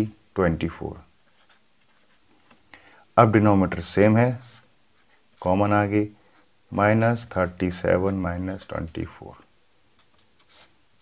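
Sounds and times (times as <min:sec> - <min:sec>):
pen scratching on paper: 0:01.2 - 0:02.2, 0:04.3 - 0:06.5, 0:10.0 - 0:10.8.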